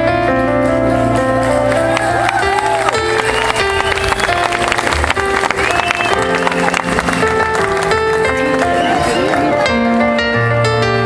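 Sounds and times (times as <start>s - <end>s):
live band playing: 0.0s - 10.5s
sustained keyboard notes: 0.0s - 11.0s.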